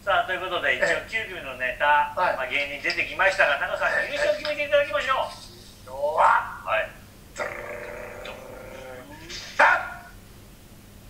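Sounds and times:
held vocal sound from laptop speaker: 7.4 - 10.1.

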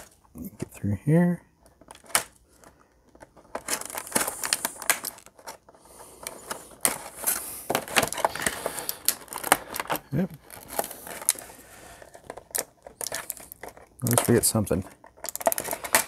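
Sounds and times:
plastic packaging crinkling: 1.8 - 16.0.

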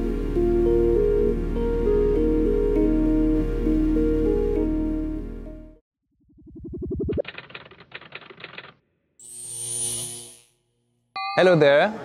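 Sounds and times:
rapid typing-like clicking: 7.1 - 8.8.

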